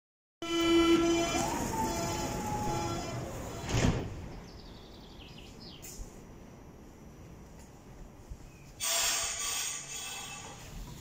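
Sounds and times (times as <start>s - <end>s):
train door warning tone: 0.4s - 4.0s
sliding doors shutting: 0.7s - 4.4s.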